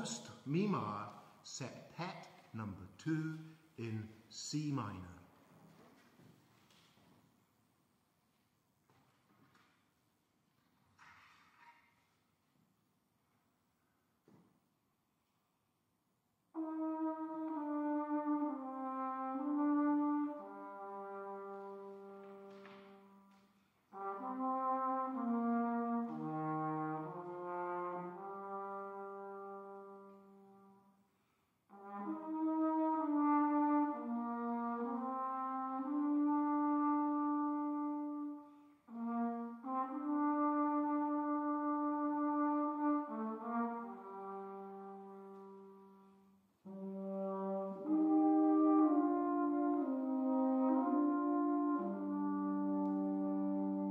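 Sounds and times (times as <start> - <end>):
brass ensemble playing chords: 0.0 - 5.1, 16.6 - 23.2, 23.9 - 30.8, 31.7 - 53.9.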